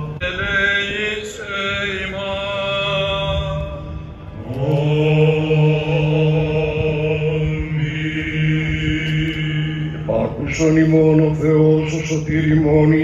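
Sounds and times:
chant with held sung notes: 0:00.0 - 0:13.0
low drone: 0:00.0 - 0:13.0.

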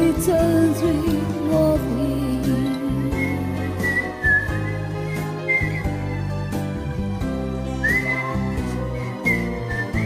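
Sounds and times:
backing music with bass and chords: 0:00.0 - 0:10.0
whistled melody: 0:02.5 - 0:10.0.

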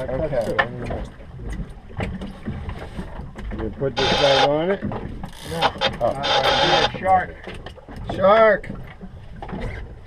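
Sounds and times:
boat noise: 0:00.0 - 0:10.0
sea: 0:00.0 - 0:10.0.

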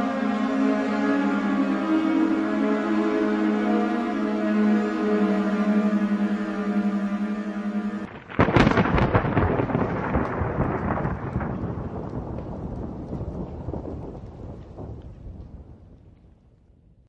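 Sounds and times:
thunder crack and rumble: 0:08.1 - 0:17.0.

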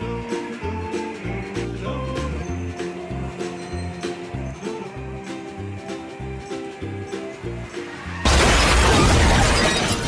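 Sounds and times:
background music: 0:00.0 - 0:10.0
crash with shattering glass: 0:08.2 - 0:10.0.

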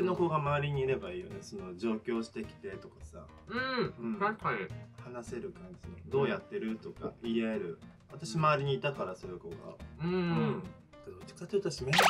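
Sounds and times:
soft background music: 0:00.0 - 0:12.0
person humming mmm: 0:03.5 - 0:04.0, 0:10.0 - 0:10.7.

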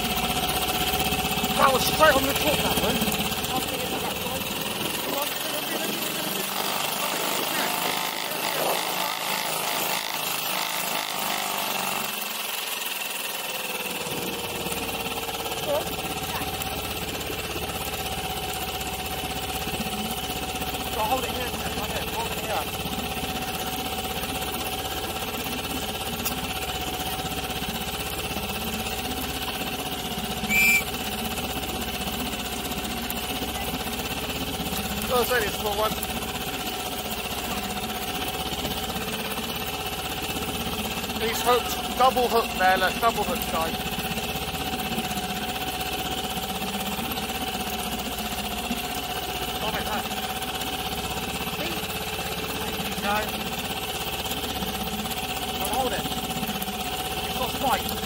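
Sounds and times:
outboard motor running: 0:00.0 - 0:58.0
high-pitched squeak: 0:30.5 - 0:30.9.

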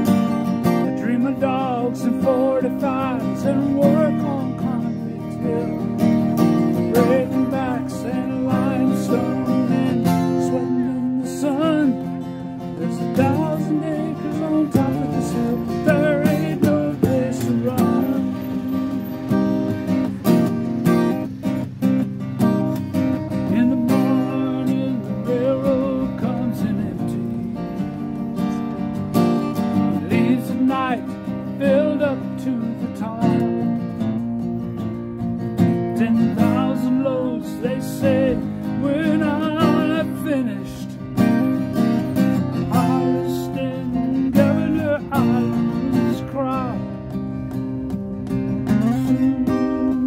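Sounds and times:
man singing: 0:00.0 - 0:19.9, 0:23.4 - 0:27.6, 0:29.8 - 0:33.8, 0:35.7 - 0:47.2, 0:48.6 - 0:50.0
acoustic guitar strumming: 0:00.0 - 0:50.0.

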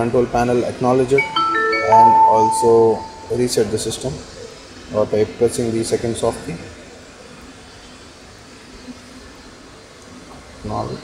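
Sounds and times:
machinery hum and hiss: 0:03.4 - 0:11.0.

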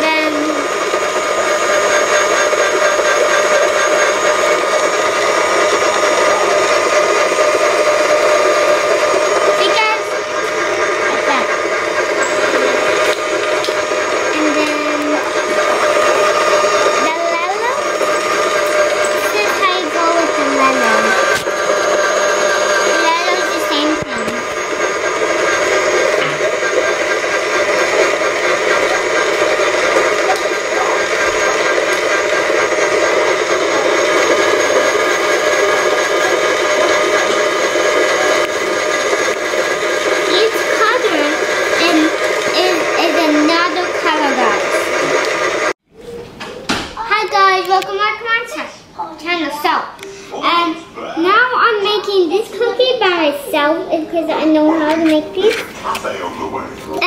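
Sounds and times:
small motor whining: 0:00.0 - 0:45.8.

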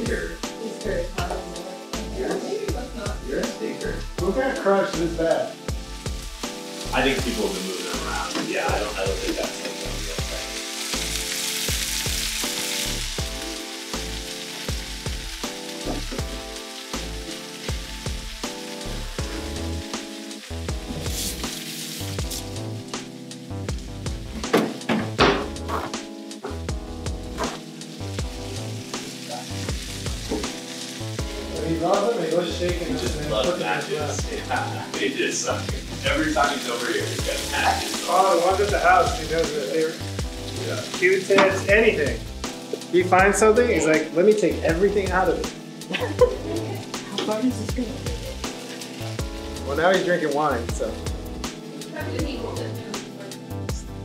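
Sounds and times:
food sizzling in a pan: 0:00.0 - 0:54.0
music with a steady beat: 0:00.0 - 0:54.0.

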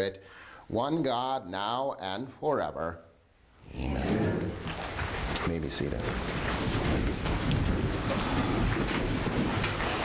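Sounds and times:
rustling and shuffling: 0:03.8 - 0:10.0.

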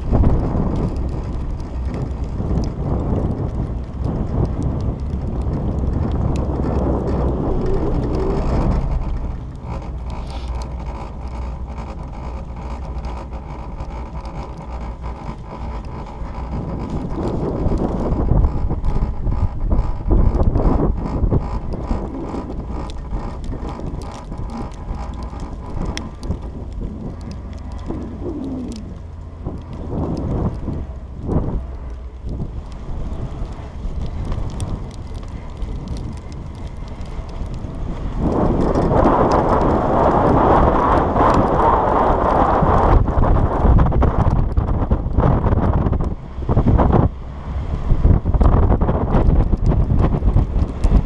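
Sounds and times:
low rumble of chairlift: 0:00.0 - 0:51.0
wind buffeting microphone: 0:00.0 - 0:51.0.

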